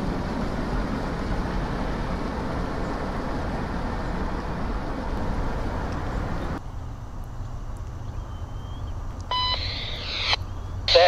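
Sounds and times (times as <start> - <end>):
radio squelch hiss: 9.3 - 11.0
scanner radio beep: 9.3 - 11.0.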